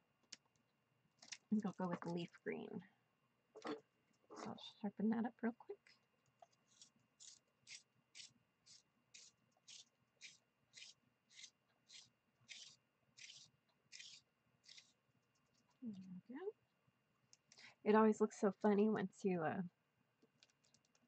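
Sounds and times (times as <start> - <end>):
pencil sharpener scraping: 6.7 - 15.0.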